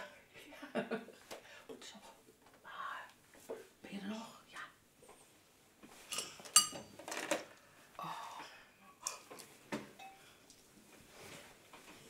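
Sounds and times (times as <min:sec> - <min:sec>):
soft whispered speech: 0:01.7 - 0:03.2, 0:03.8 - 0:04.8.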